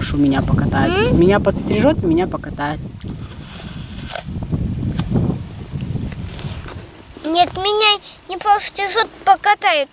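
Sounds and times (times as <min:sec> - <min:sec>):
wind buffeting microphone: 0:00.0 - 0:09.5.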